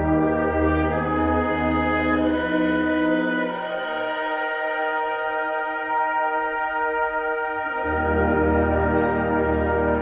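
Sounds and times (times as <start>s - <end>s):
wind band playing chords: 0.0s - 10.0s.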